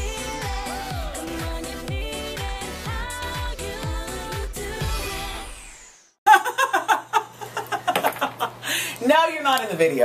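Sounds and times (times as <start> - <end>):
intro music: 0.0 - 6.2.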